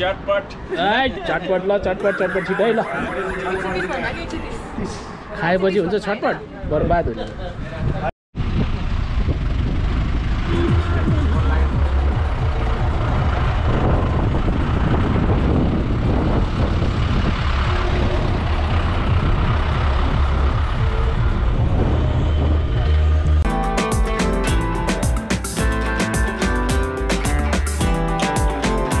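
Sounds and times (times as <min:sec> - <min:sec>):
vehicle engine and road rumble: 0:08.4 - 0:23.4
guitar music: 0:23.5 - 0:29.0.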